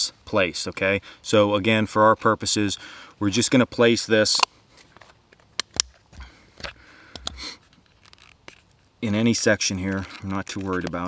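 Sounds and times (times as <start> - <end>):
soft rustles: 4.7 - 11.0.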